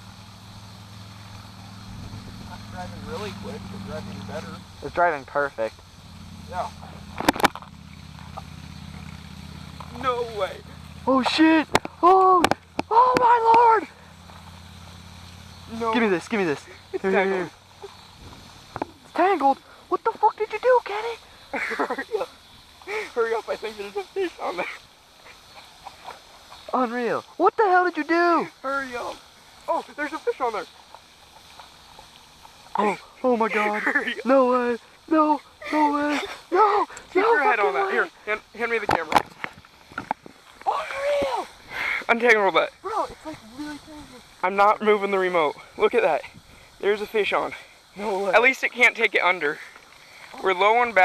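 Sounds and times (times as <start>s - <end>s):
man shouting in surprise: 11.1s - 14.0s, 35.2s - 38.1s, 40.6s - 41.6s.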